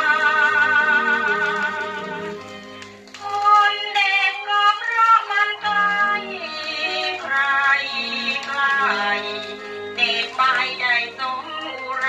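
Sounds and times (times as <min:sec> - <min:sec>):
woman singing with orchestra: 0:00.0 - 0:02.4, 0:03.2 - 0:12.0.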